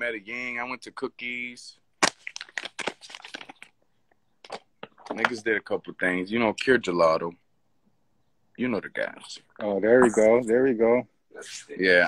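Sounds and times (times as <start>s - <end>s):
plastic pouch crinkling: 2.0s - 3.8s.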